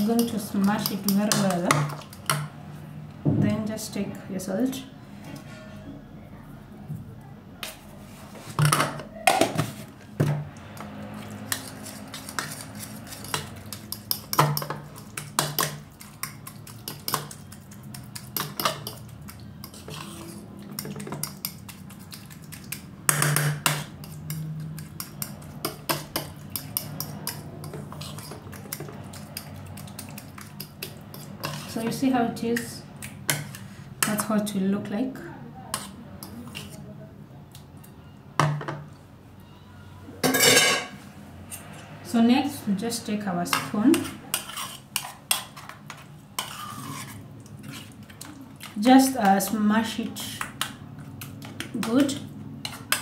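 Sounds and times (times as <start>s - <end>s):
fork scraping ceramic bowl: 11.2s - 22.4s, 23.2s - 32.0s, 35.7s - 36.8s, 43.5s - 49.6s, 51.6s - 53.0s.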